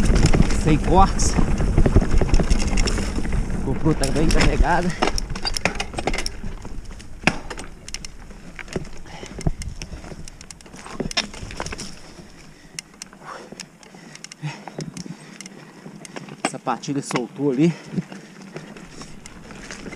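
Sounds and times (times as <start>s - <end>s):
bike parts clicking and rattling: 0.0s - 19.9s
tyre and wind rumble: 0.0s - 19.9s.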